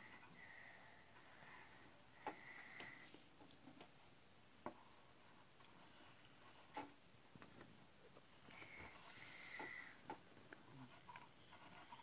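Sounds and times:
pencil scratching on paper: 10.6s - 12.0s.

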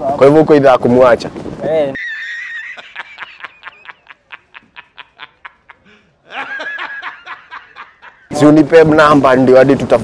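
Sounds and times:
man laughing hard: 2.0s - 8.3s.

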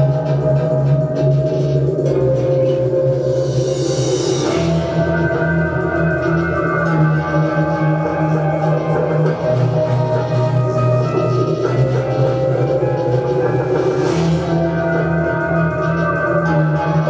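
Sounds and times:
cymbal swell: 0.0s - 17.0s.

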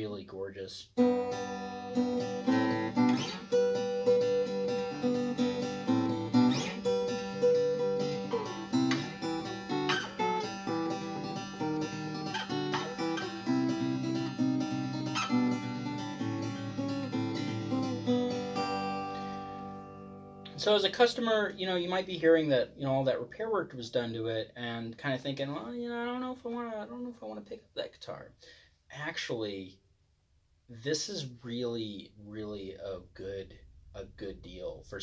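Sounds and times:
acoustic guitar playing: 1.0s - 23.2s.

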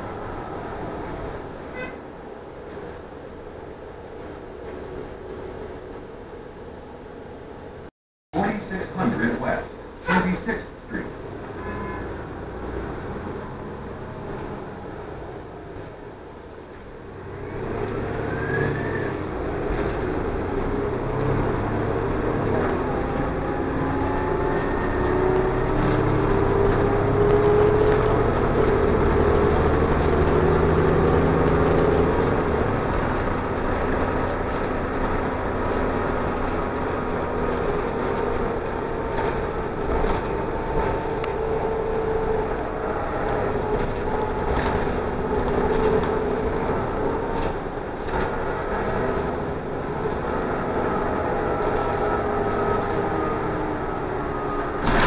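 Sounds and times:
bus engine drone: 0.0s - 55.0s
road noise: 0.0s - 55.0s.

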